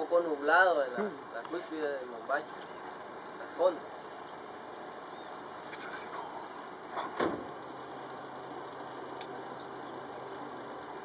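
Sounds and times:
boat motor running: 0.0 - 11.0.

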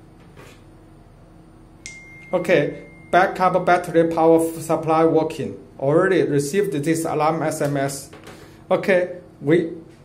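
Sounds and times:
faint room hiss: 0.0 - 10.0
high-pitched electronic beep: 1.9 - 3.4.

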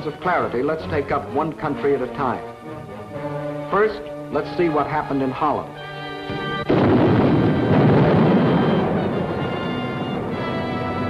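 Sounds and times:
dramatic orchestral music: 0.0 - 11.0
artillery explosions: 6.3 - 11.0.

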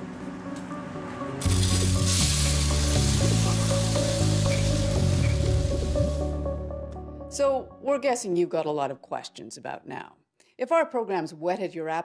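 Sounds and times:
low bass music: 1.2 - 7.3
loud steady hiss: 1.4 - 6.3.

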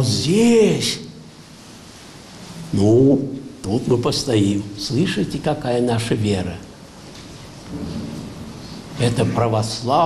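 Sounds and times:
soft rumbling in a hall: 0.0 - 10.0.

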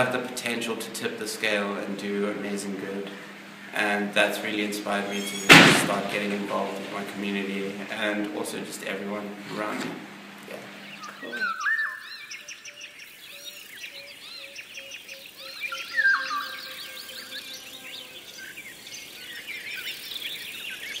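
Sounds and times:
birds chirping and trilling: 0.9 - 6.6, 10.6 - 21.0
long whistled bird notes: 10.8 - 21.0.

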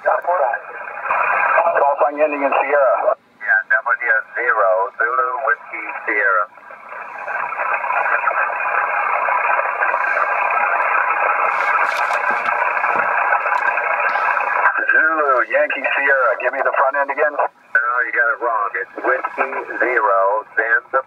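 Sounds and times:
voice over radio: 0.0 - 6.5, 13.9 - 21.0
radio static hiss: 0.0 - 21.0.

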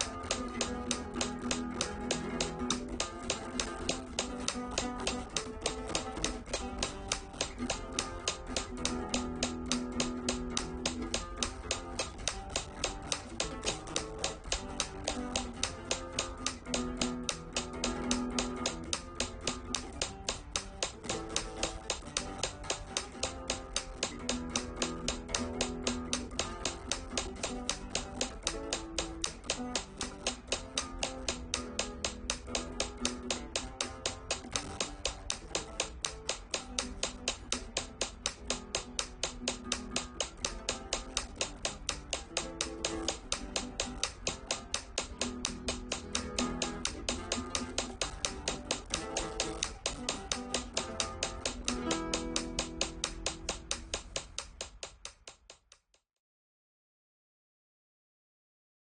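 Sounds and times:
flamenco guitar strumming: 0.0 - 55.0
metronome clicking: 0.0 - 55.9.

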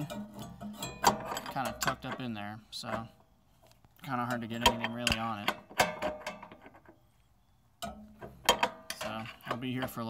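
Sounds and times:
wrench clinking on metal fitting: 0.0 - 3.1.

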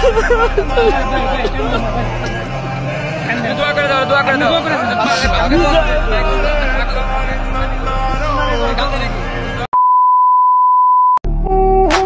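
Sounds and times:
crowd voices: 0.0 - 9.7
steady test-tone beep: 9.7 - 11.2.

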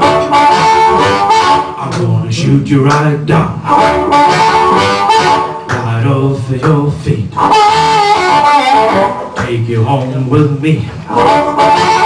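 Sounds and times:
amplified blues harmonica: 0.0 - 2.0, 3.6 - 5.7, 7.3 - 9.4, 11.0 - 12.0
guitar and bass accompaniment: 0.0 - 12.0
person singing: 0.0 - 12.0.

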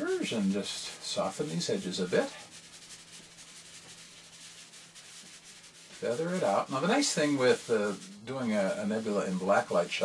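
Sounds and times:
fingertips scuffing chalk: 0.1 - 9.2.

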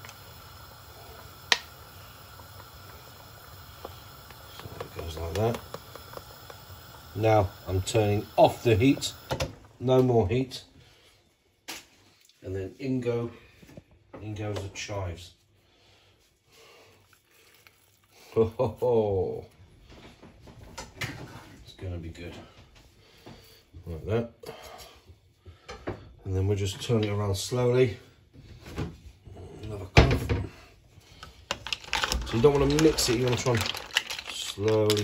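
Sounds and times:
pan hissing on the heat: 0.0 - 10.5, 31.7 - 35.0
chives dropping into a pot: 31.5 - 35.0.

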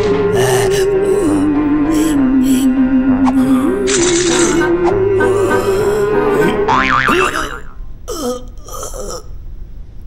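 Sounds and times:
cartoon background music: 0.0 - 7.8
warbling boing sound effect: 6.7 - 7.7.

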